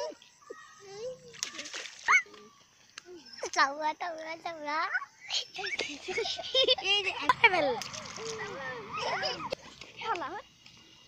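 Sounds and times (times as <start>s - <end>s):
child's voice: 0.0s - 6.0s, 6.7s - 10.5s
splash in water: 1.2s - 2.4s, 7.4s - 9.8s.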